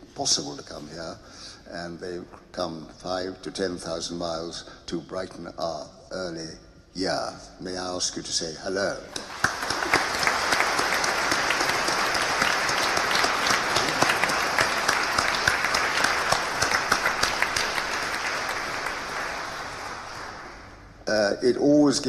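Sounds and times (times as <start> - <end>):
audience applauding: 9.2 - 20.9.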